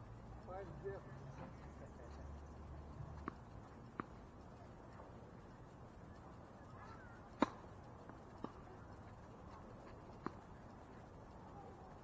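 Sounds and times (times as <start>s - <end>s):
tennis ball bouncing on hard court: 3.2s - 4.2s, 7.4s - 8.6s, 9.8s - 10.4s.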